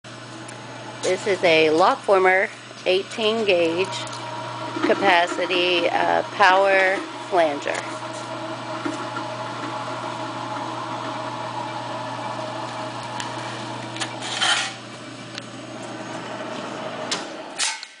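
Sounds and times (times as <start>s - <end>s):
electric machine motor hum: 0.1s - 17.6s.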